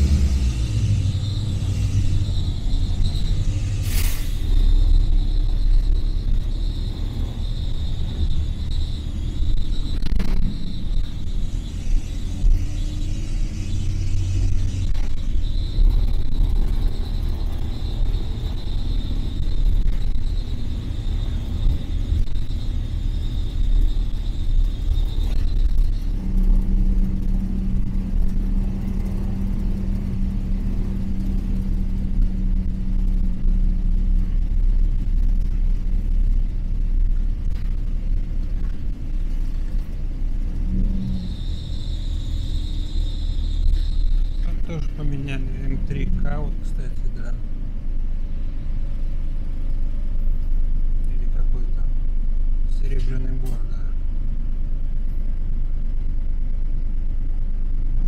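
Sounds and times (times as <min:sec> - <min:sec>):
thin high whine: 0:00.0 - 0:35.4, 0:40.4 - 0:47.5
bus engine and road rumble: 0:00.0 - 0:58.0
lower steady hum: 0:00.0 - 0:58.0.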